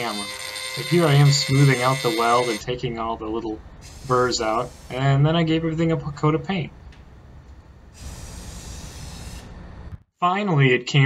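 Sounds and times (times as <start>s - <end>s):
spray paint can hissing: 3.8s - 5.0s, 8.0s - 9.5s.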